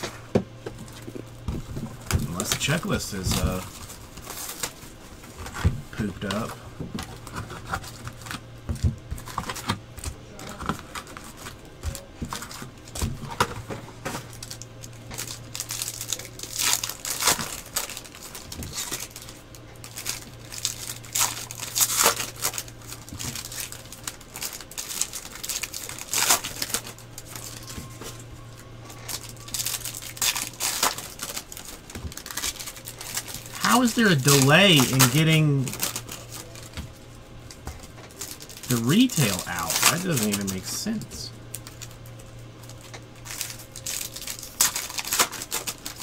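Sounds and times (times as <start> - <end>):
steady low hum: 0.0 - 46.0
foil wrappers tearing and crinkling: 0.8 - 46.0.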